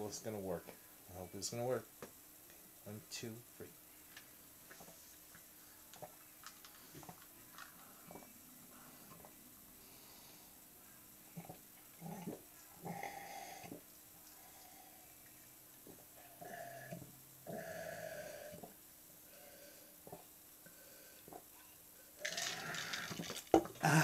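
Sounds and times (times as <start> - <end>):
person gulping a drink: 22.2 - 24.0.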